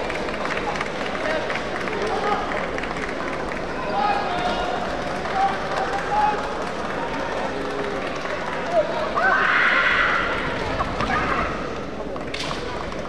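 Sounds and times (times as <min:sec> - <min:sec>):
hall hubbub: 0:00.0 - 0:13.0.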